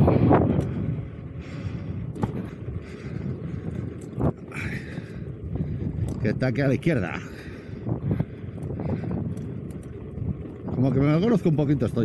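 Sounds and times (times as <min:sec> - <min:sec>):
rolling road noise: 0:00.0 - 0:12.0
wind buffeting microphone: 0:00.0 - 0:12.0.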